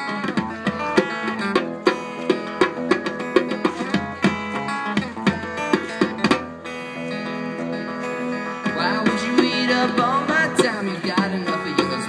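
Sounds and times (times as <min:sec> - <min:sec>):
bongo hits: 0:00.0 - 0:06.8
strummed electric guitar: 0:00.0 - 0:12.0
person singing: 0:08.6 - 0:12.0.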